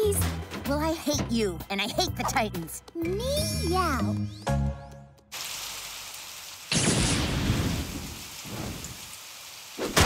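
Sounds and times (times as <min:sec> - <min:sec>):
rain pouring: 0:05.3 - 0:10.0
thunder rumbling: 0:06.7 - 0:09.0.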